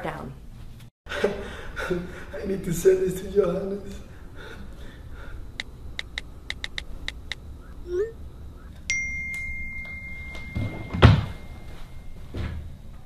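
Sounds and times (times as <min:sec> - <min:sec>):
steady high beep tone: 0:07.6 - 0:12.4.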